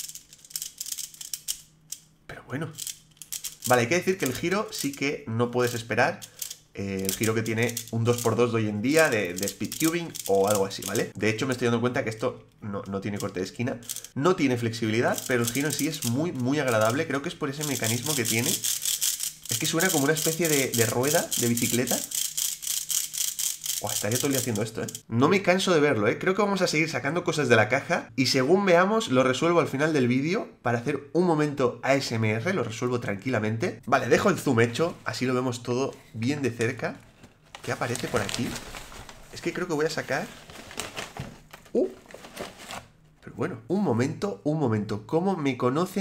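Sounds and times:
puzzle cube plastic clicks: 0.0 - 2.1, 2.7 - 5.0, 5.6 - 8.4, 9.0 - 11.1, 13.2 - 14.2, 15.2 - 17.0, 17.6 - 25.0.

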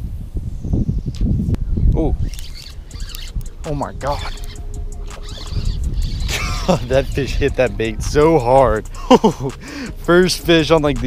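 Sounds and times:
wind buffeting microphone: 0.0 - 11.0
sharp click: 1.9 - 6.2.

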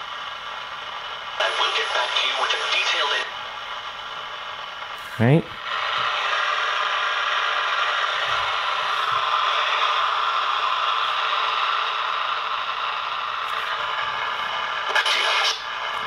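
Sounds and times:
radio static: 1.4 - 3.3, 14.9 - 15.7.

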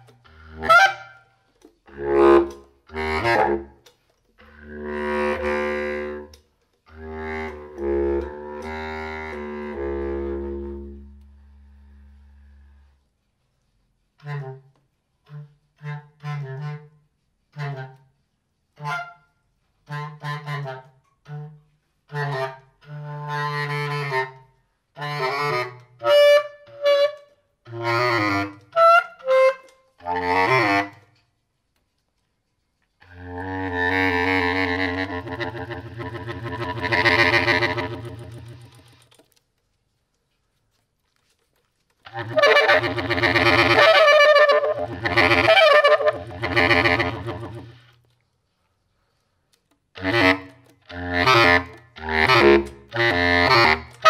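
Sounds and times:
bass clarinet improvisation: 0.0 - 13.0, 14.2 - 31.1, 33.0 - 39.1, 42.0 - 48.0, 49.9 - 54.0.

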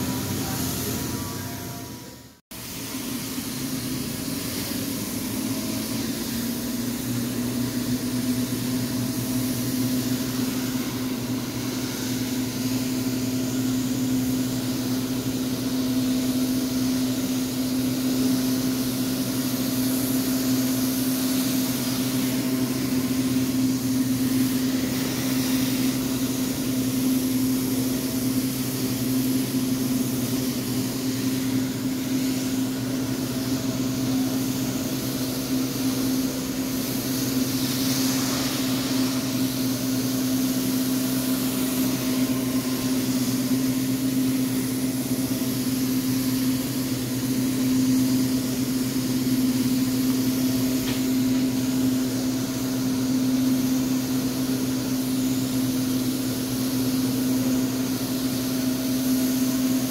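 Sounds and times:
steady machine hum: 0.0 - 59.9
vacuum suction rushing: 29.7 - 45.6.

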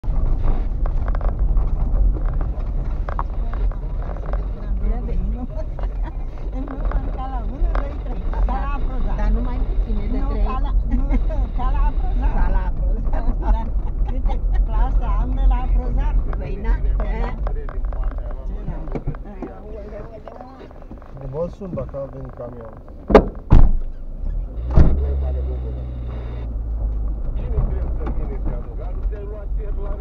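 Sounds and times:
engine and tyres rumbling: 0.0 - 30.0.

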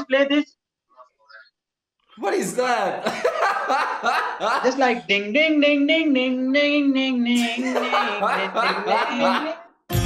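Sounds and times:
loud laughter: 3.0 - 4.8, 7.4 - 9.6.

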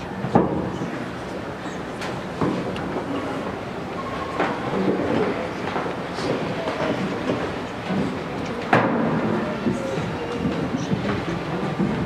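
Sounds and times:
congregation rumble and shuffling: 0.0 - 12.0.

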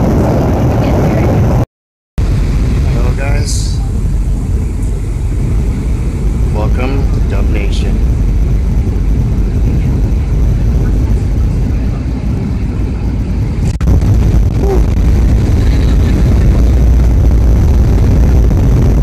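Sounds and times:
jet engines and airflow in cabin: 0.0 - 1.6, 2.2 - 19.0
faint passenger voices: 2.8 - 13.7, 14.6 - 17.0.

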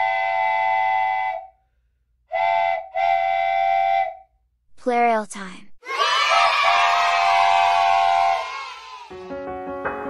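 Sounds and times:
steam locomotive whistle blasts: 0.0 - 1.6, 2.3 - 4.3, 6.6 - 8.5.

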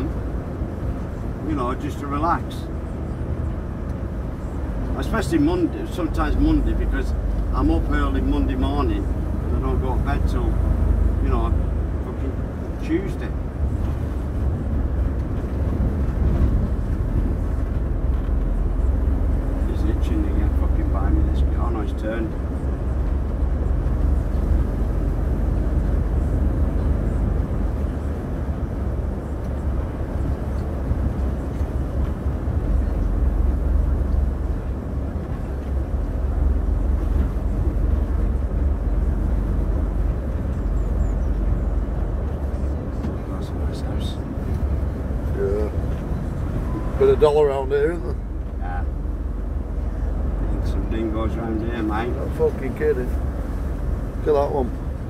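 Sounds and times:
diesel engine rumble: 0.0 - 55.0
road noise: 0.0 - 55.0.

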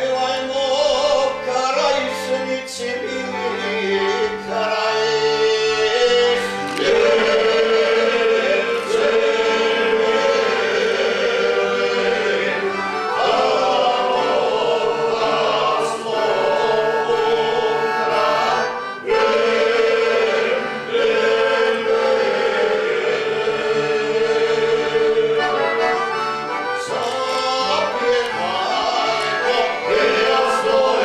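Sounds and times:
male group singing: 0.0 - 26.2, 26.8 - 31.0
accordion: 0.0 - 31.0.

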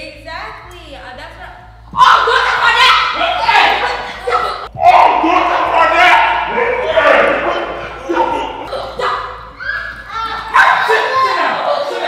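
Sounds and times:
people's voices: 2.2 - 12.0.

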